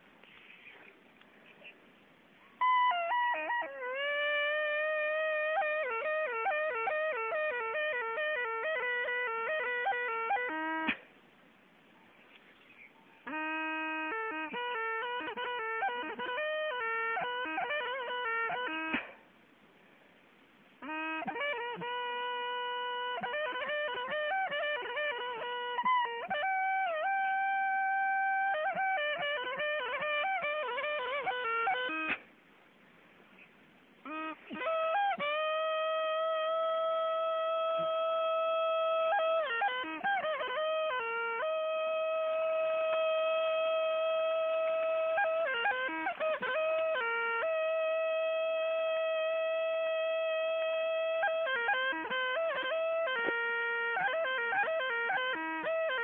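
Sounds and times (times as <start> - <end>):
solo flute melody: 2.4 - 11.2, 12.7 - 19.2, 20.7 - 32.4, 34.0 - 56.0.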